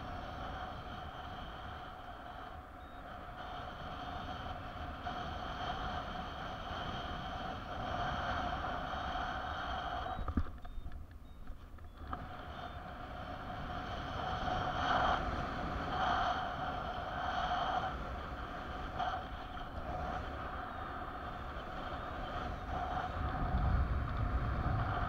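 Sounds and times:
wind rushing over microphone: 0.0 - 25.0
steady whistling tone: 0.2 - 23.6.

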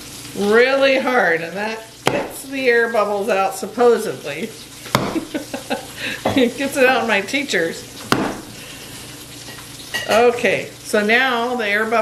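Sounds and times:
low steady hiss: 0.0 - 12.0
dough slapping onto a board: 4.9 - 5.3, 8.1 - 8.5.

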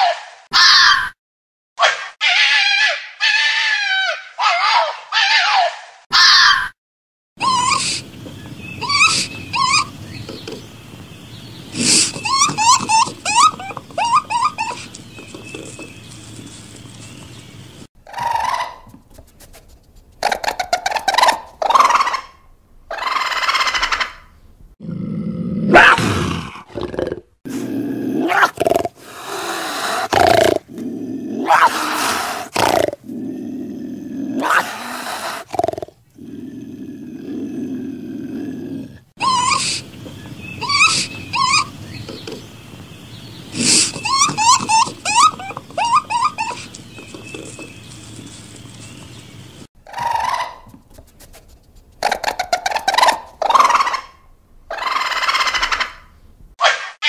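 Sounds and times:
animal rasping cries: 1.8 - 6.7, 8.8 - 10.4, 11.7 - 16.9, 28.2 - 37.6, 39.2 - 42.2, 43.4 - 49.1.

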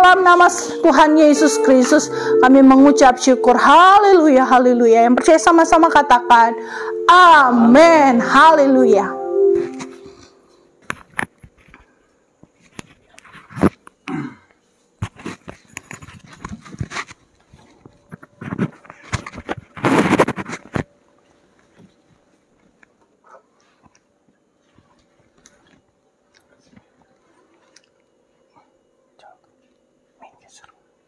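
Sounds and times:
soft rustling on microphone: 15.0 - 22.8.

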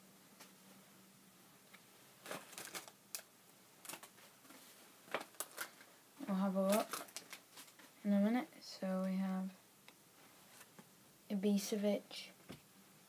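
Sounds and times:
wrapper crackling and tearing: 2.2 - 4.1, 5.1 - 5.9, 6.6 - 7.9.

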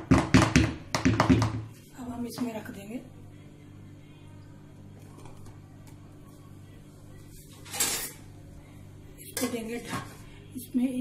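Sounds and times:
low steady hum: 1.7 - 11.0.

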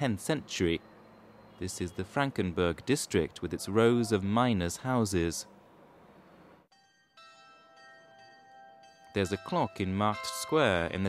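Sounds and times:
faint carillon bells chiming: 6.8 - 11.0.

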